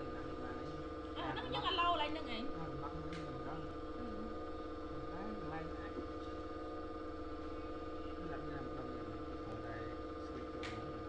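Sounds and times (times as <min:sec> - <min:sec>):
steady tonal hum: 0:00.0 - 0:11.0.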